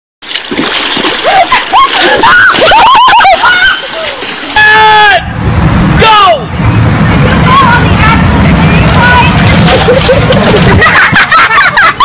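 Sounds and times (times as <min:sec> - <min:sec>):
water splashing: 0:00.2 - 0:04.6, 0:07.2 - 0:12.0.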